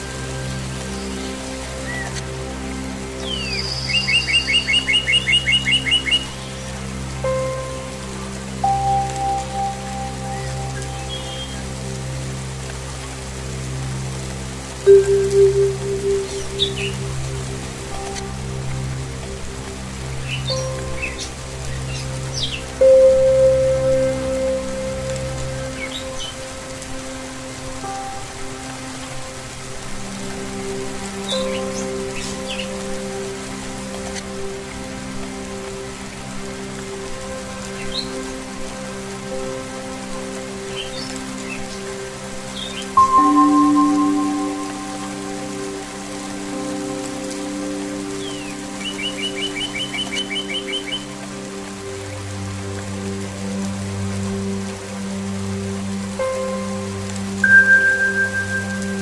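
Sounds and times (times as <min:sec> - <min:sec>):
ambient music of low tones: 0:00.0 - 0:59.0
rain falling: 0:00.0 - 0:59.0
birds chirping: 0:08.6 - 0:11.8, 0:20.2 - 0:26.8, 0:42.6 - 0:51.1
singing bowl ringing: 0:43.0 - 0:46.1, 0:57.4 - 0:59.0.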